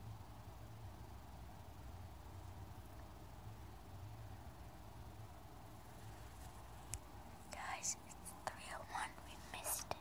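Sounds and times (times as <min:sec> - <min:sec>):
person whispering: 0:07.5 - 0:10.0.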